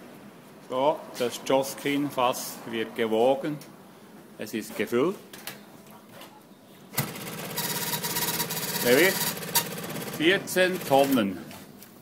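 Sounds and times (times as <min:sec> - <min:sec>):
machine buzzing: 0:07.0 - 0:11.2.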